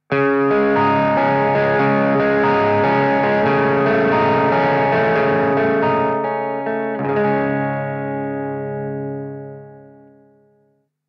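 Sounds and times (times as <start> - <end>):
clean electric guitar: 0.0 - 10.7.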